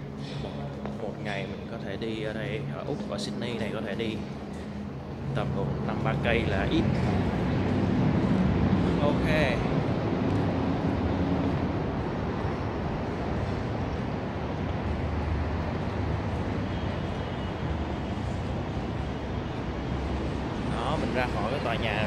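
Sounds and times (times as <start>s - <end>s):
city street traffic rumble: 0.0s - 22.0s.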